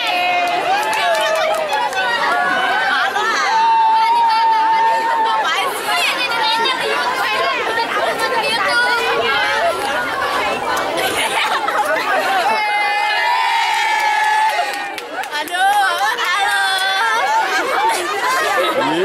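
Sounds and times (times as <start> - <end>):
girls chattering and laughing: 0.0 - 19.0.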